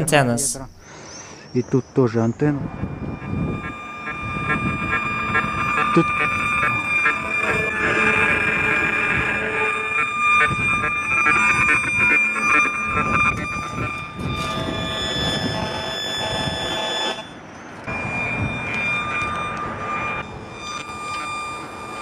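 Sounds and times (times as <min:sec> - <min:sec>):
steady electronic tones: 0:00.0 - 0:22.0
rapid stuttering buzz: 0:02.6 - 0:22.0.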